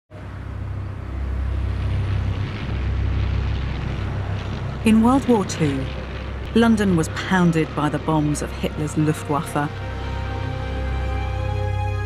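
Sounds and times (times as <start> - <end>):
low engine rumble: 0.1 - 12.0.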